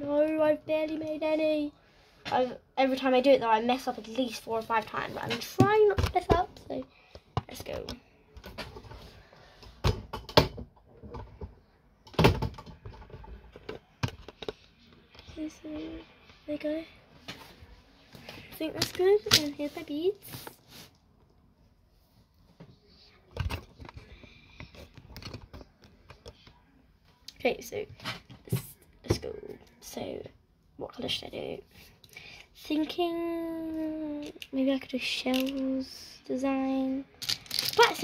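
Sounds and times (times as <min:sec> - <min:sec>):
handling rustles on a desk: 0:17.2 - 0:21.0.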